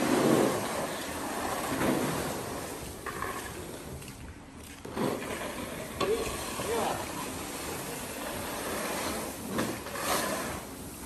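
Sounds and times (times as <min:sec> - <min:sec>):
grain rustling and sliding: 0:00.0 - 0:11.0.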